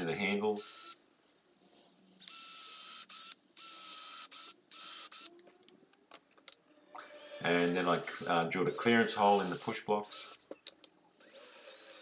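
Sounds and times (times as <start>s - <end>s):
cordless drill whining: 7.0s - 10.4s.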